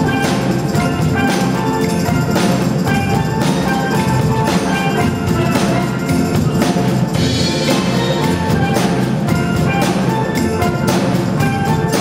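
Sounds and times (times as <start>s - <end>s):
percussion beat: 0.0s - 12.0s.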